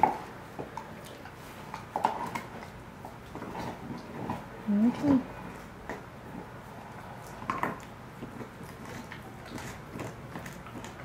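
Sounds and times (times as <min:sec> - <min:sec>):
dog chewing on bone: 0:00.0 - 0:11.0.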